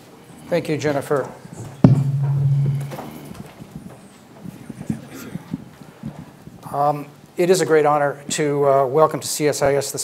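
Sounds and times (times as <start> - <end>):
low steady hum: 1.8 - 3.4.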